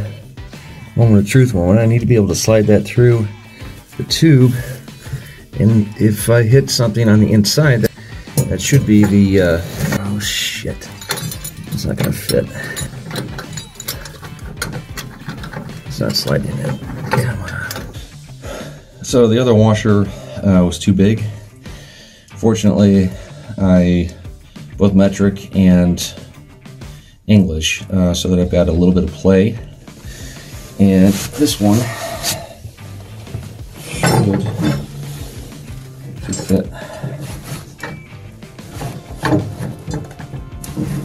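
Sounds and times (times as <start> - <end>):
light metal rubbing: 3.8 - 18.1, 30.7 - 41.0
metal clicks and scraping: 8.3 - 10.2, 10.8 - 18.0, 33.2 - 41.0.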